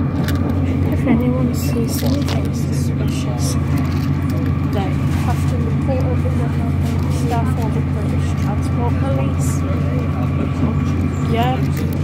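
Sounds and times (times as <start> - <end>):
diesel train engine droning: 0.0 - 12.0
faint voices: 0.4 - 12.0.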